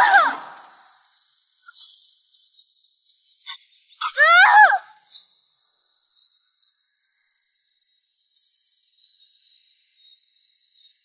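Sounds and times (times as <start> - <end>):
loud wavering pitched cry: 0.0 - 0.9, 4.0 - 4.9.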